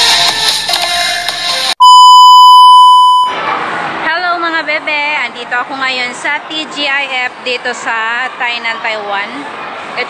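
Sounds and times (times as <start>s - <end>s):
upbeat electronic music: 0.0s - 3.4s
loud electronic beep: 1.8s - 3.4s.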